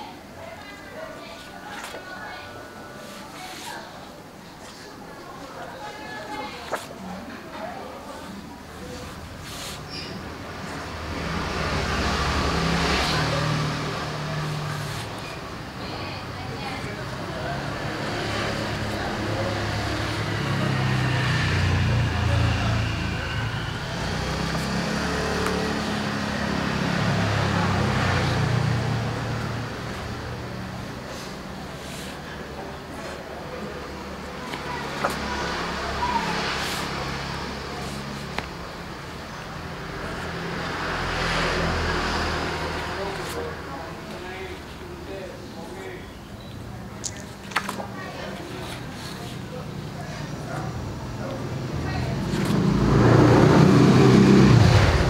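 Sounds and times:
motor vehicle passing by: 6.1 - 46.0, 48.0 - 55.0.

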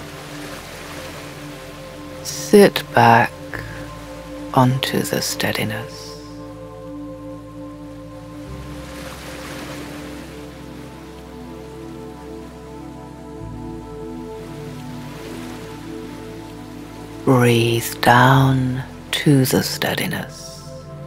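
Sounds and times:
surf hiss: 0.0 - 20.9
ambient synth drones: 0.0 - 21.0.

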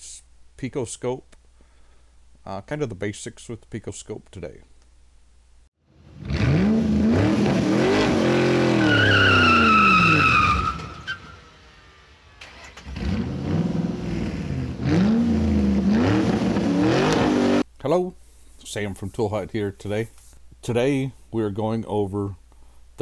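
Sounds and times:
car engine revving: 6.0 - 17.6
tyre squeal: 8.6 - 11.4.

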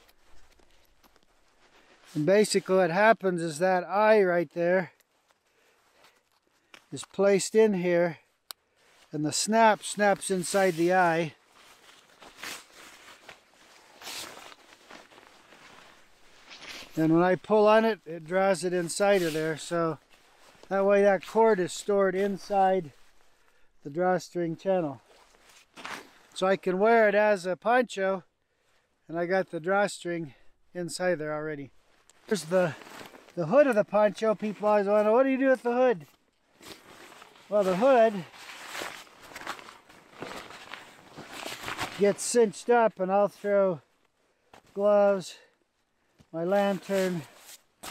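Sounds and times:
fabric and cord rustling: 0.0 - 2.7, 8.4 - 17.8, 31.7 - 42.4.

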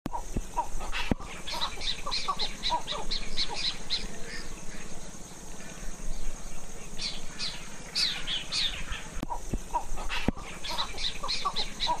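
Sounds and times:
birds chattering: 0.1 - 12.0.

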